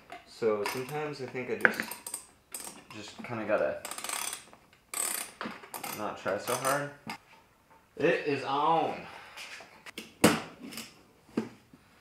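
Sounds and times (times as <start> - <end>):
ratchet strap clacking: 1.6 - 2.9, 3.8 - 6.8.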